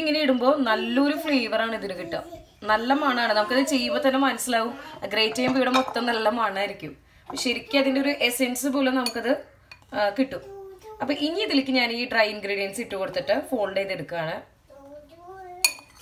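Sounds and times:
woman talking: 0.0 - 10.4, 11.1 - 14.5
utensils clinking on bowls: 5.2 - 6.1, 15.6 - 16.0.

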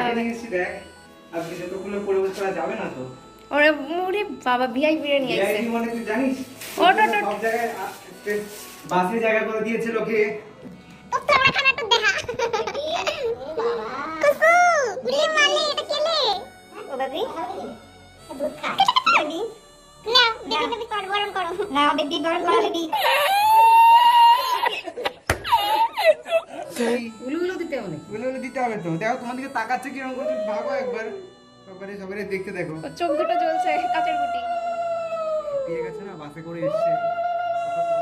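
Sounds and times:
puppy howling: 30.0 - 31.4, 33.0 - 36.0, 36.7 - 38.0
puppy crying: 30.0 - 31.6.

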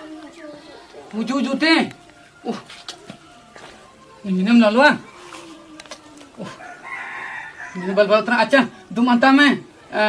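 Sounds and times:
rooster crowing: 6.4 - 8.7.

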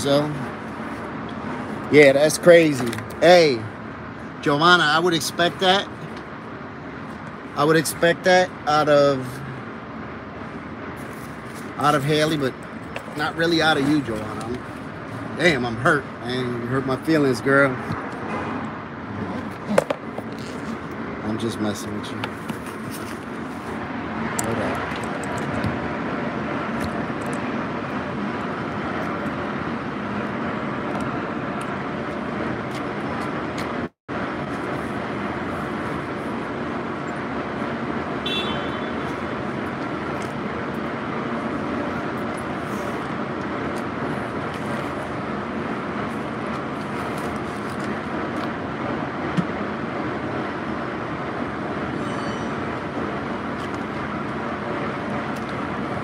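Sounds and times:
city street traffic: 0.0 - 56.0.

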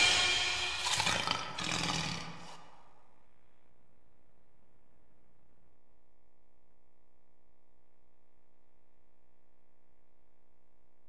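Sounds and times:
intro sting music: 0.0 - 1.9
lion roaring: 0.0 - 2.8.

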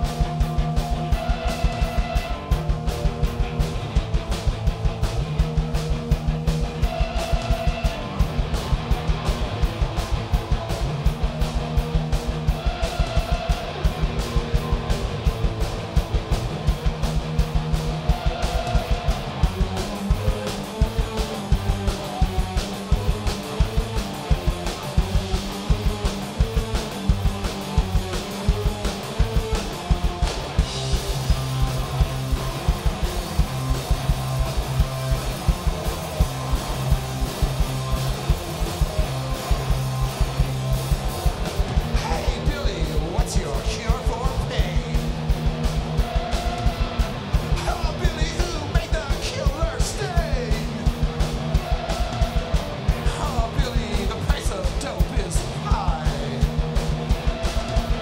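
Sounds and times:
distorted guitar riff: 0.0 - 58.0
driving drum beat: 0.0 - 58.0
live rock band playing: 0.0 - 58.0.

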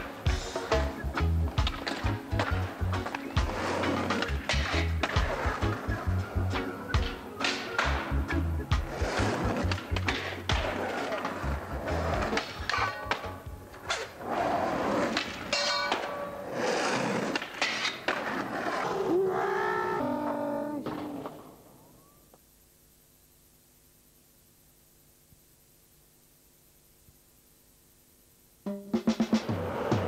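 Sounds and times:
music soundtrack: 0.0 - 13.8
skateboard clatter: 1.6 - 5.9, 8.8 - 18.9.

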